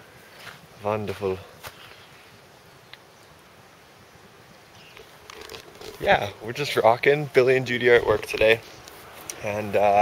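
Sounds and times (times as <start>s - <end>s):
faint outdoor background hiss: 0.0s - 10.0s
camera handling rustle: 4.8s - 6.3s.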